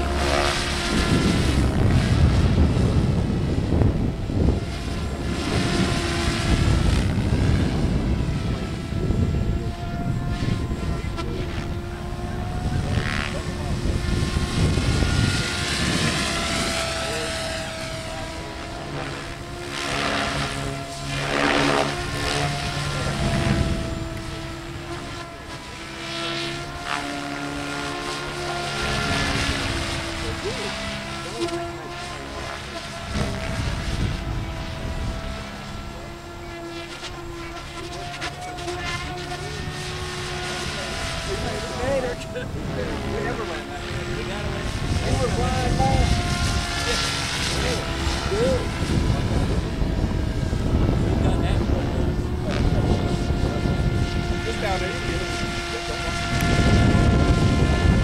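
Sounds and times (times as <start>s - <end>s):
low rumbles: 0.0s - 58.0s
rc helicopter whine: 0.0s - 58.0s.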